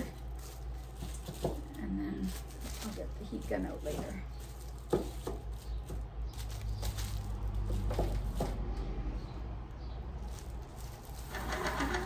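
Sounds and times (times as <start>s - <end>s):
plastic film crinkling: 0.0s - 8.6s, 10.0s - 12.0s.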